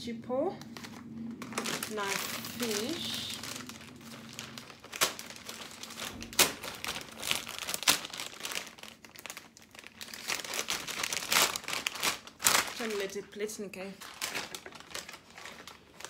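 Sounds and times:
food packaging crinkling: 0.6 - 16.0.

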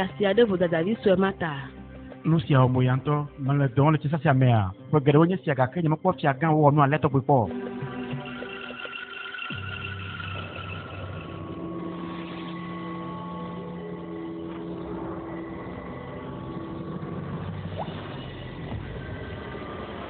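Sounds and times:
dramatic drone score: 7.5 - 20.0.

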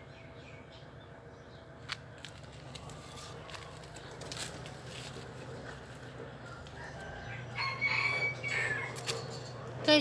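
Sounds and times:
rooster crowing: 6.5 - 9.2.

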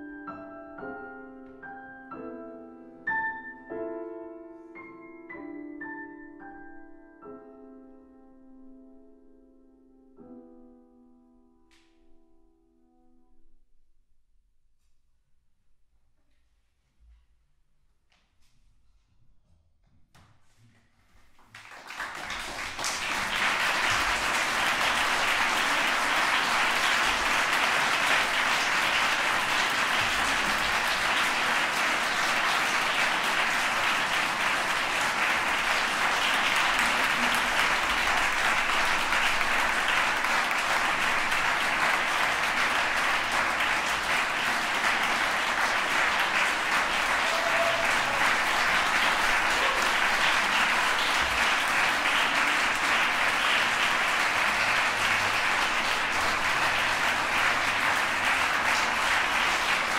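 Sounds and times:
audience applauding: 21.4 - 59.9.

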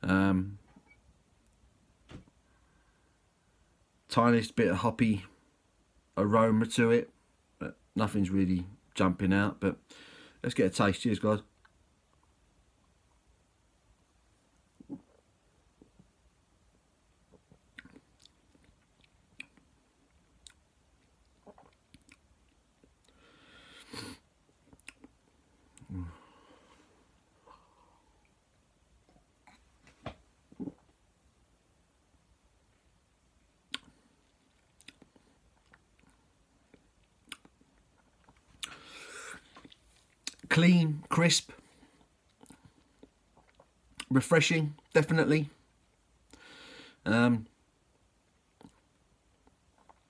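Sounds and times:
person breathing: 9.9 - 10.4, 23.1 - 24.2, 25.8 - 28.2, 38.6 - 39.6, 46.3 - 47.0
mouth clicks and lip smacks: 17.3 - 23.2, 24.5 - 25.9, 30.5 - 31.0, 33.7 - 38.8, 39.5 - 40.5, 42.0 - 44.1, 48.5 - 50.0
lip and tongue smacks: 33.7 - 34.0, 37.2 - 37.6.

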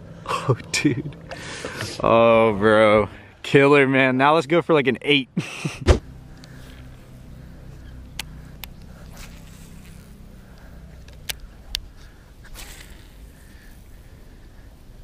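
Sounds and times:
fishing reel gears humming: 6.0 - 15.0
handling rustle: 8.3 - 13.9.

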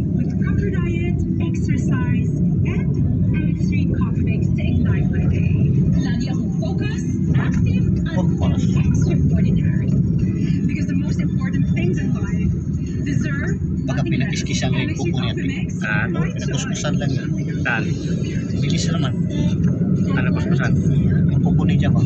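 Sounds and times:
car engine and tyre noise: 0.0 - 22.0.

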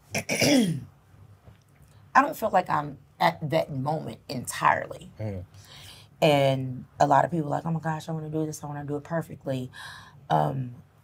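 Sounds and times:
person clearing throat: 0.1 - 0.9.

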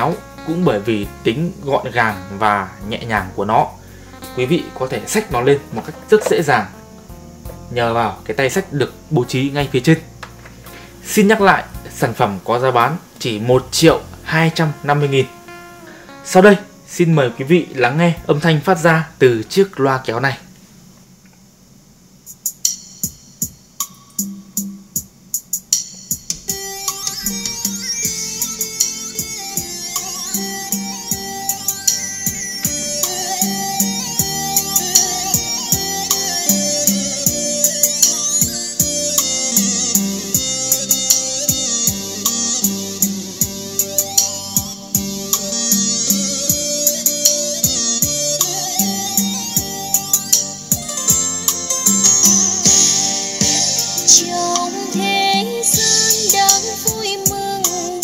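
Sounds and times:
steady drum beat: 0.0 - 10.3, 22.2 - 58.0
plucked guitar-like notes: 4.4 - 6.6, 50.8 - 54.1.

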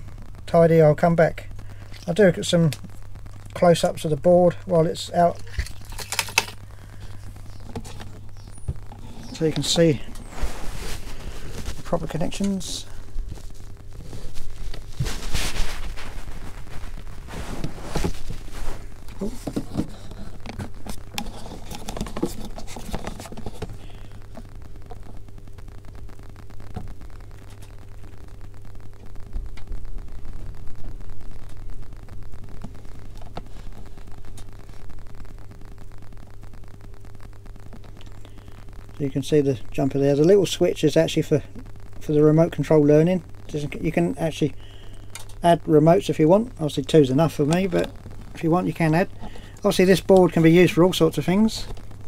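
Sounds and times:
steady low hum: 0.0 - 52.0
scraping and rustling over cloth: 7.4 - 23.8.

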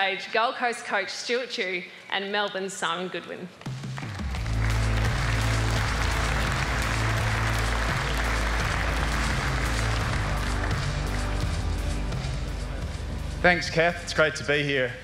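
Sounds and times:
audience applause: 4.0 - 12.0
music with bass line: 4.1 - 14.2.

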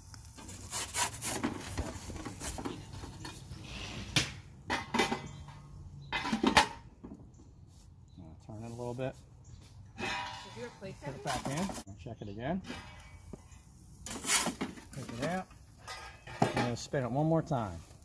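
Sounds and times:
metal peel scraping oven floor: 10.0 - 11.8, 14.1 - 15.2.

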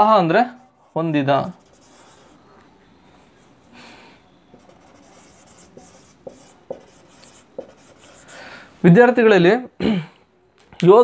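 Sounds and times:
marker writing on whiteboard: 0.6 - 2.6, 4.5 - 8.4
marker tip tapping board: 5.7 - 7.8.

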